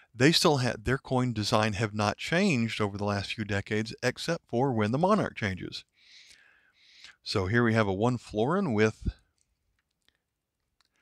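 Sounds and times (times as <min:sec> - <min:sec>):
faint scattered clicks: 0:09.3 - 0:11.0.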